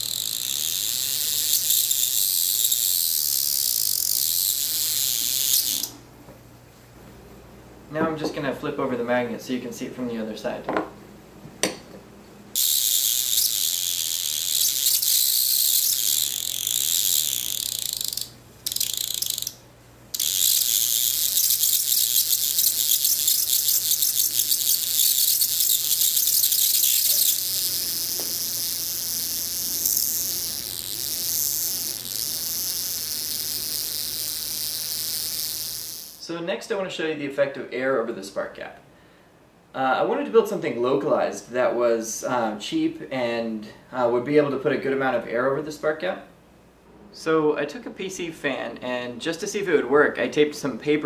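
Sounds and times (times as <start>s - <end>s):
electric arc crackling buzz: 0.0s - 6.1s, 12.5s - 36.4s.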